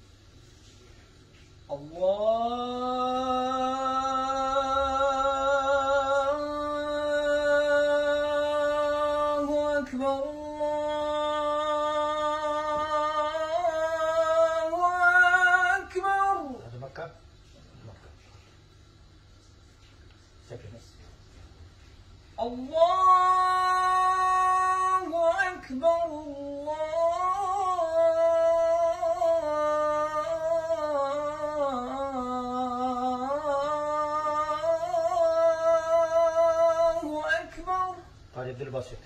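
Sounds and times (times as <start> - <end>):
man reciting melodically: 1.6 - 17.5, 22.4 - 39.0.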